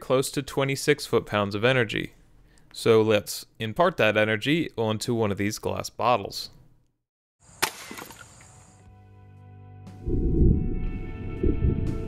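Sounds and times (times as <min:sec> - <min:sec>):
air rifle shot: 0:07.6 - 0:08.4
background music: 0:08.8 - 0:12.0.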